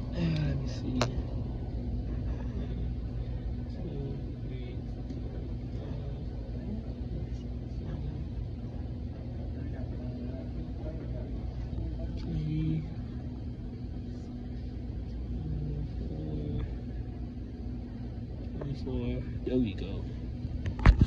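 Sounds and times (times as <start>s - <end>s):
machinery hum: 0.0s - 21.0s.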